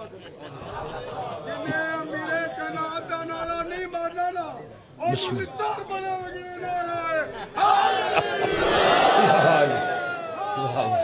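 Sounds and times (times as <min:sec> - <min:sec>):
man's amplified voice: 0:01.5 - 0:07.4
crowd of men shouting: 0:05.2 - 0:11.0.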